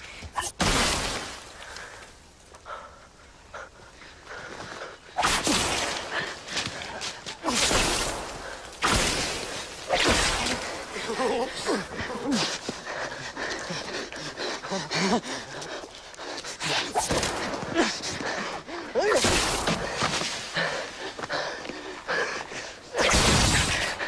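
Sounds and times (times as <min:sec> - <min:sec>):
people panting: 0:01.6 - 0:08.8, 0:09.4 - 0:23.0, 0:23.7 - 0:24.0.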